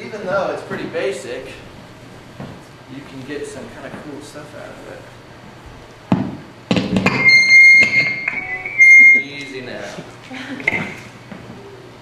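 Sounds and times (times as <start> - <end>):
high-pitched squeal: 7.1 - 9.9.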